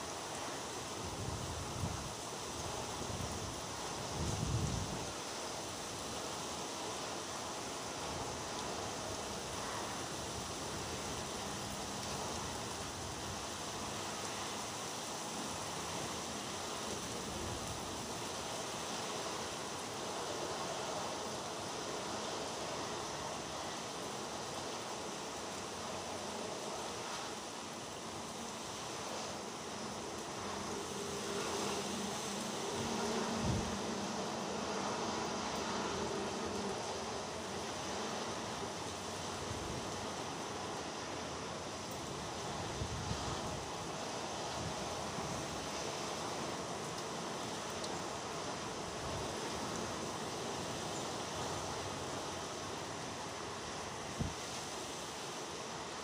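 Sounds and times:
rain: 0.0 - 56.0
wind: 0.0 - 56.0.

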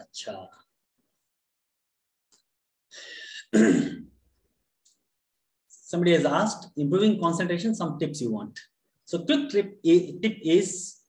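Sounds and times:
short breath: 2.9 - 3.5
man clearing his throat: 3.4 - 4.2.

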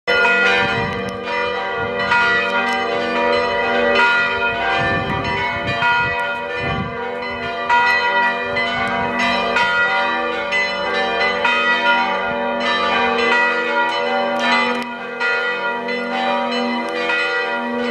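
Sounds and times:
church bells ringing: 0.1 - 17.9.

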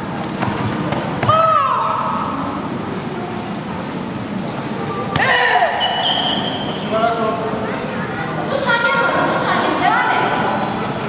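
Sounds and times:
high-pitched shouts echoing: 1.3 - 2.3, 5.1 - 6.3.

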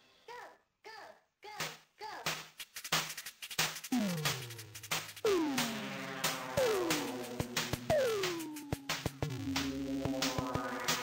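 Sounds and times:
drum machine beat with bass kicks: 1.6 - 11.0
electronic tones arching in pitch: 3.9 - 11.0.

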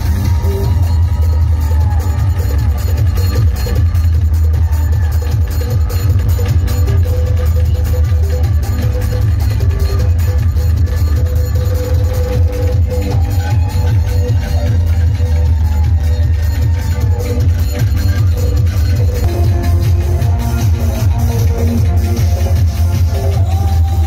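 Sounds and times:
loud electronic dance music: 0.0 - 24.0.

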